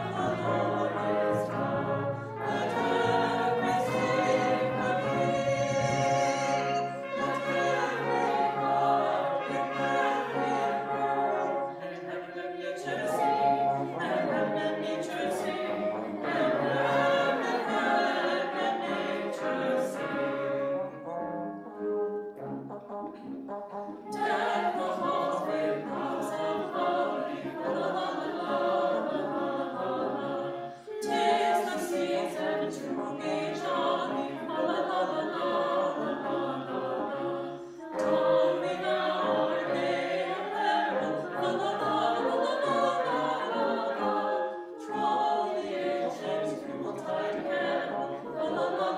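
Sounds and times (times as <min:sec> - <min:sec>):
brass and woodwinds: 0:00.0 - 0:48.9
mixed choir singing: 0:00.0 - 0:48.9
wind band accompaniment: 0:00.0 - 0:48.9.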